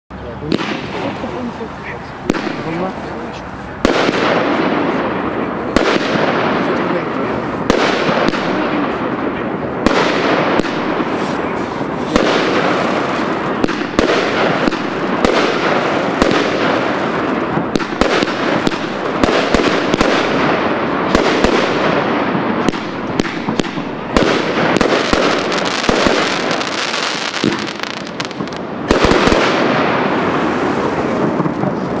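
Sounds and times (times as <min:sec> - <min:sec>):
firework bangs: 0:00.4 - 0:32.0.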